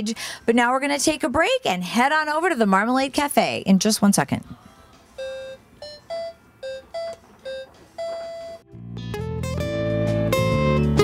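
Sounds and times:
toy piano electronic notes: 5.2s - 8.6s.

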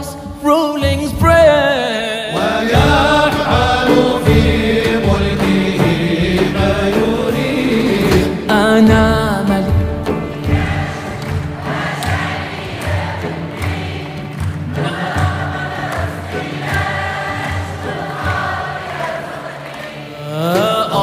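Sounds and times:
many voices singing together: 2.0s - 9.5s, 10.1s - 21.0s
instrumental ensemble playing: 2.3s - 21.0s.

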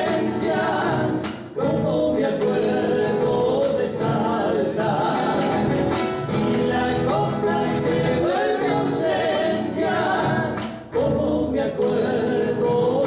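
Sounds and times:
acoustic guitar: 0.0s - 13.0s
men singing: 0.0s - 13.0s.

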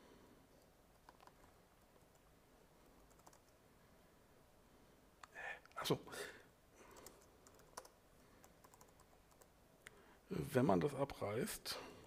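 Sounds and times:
keyboard typing: 0.9s - 2.3s, 2.9s - 3.6s, 6.9s - 9.5s.

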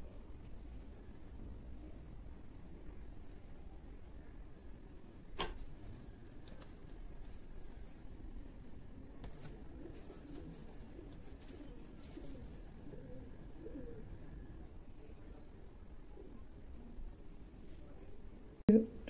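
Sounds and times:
pigeon cooing: 9.3s - 15.4s.

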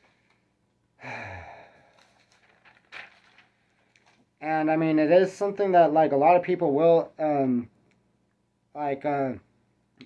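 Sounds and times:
man sighing: 1.0s - 2.2s
paper crackling: 1.8s - 4.4s.

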